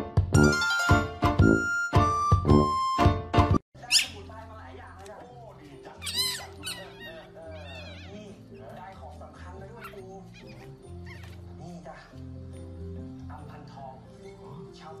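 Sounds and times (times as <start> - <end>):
music with repeating bass line: 0.0 - 3.6
dog yelping: 3.8 - 4.2, 6.0 - 9.0, 9.6 - 11.6.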